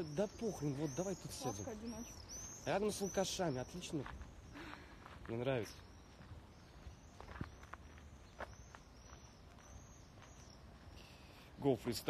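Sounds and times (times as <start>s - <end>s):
outdoor background noise: 0.0s - 12.0s
soft footsteps on path: 0.0s - 12.0s.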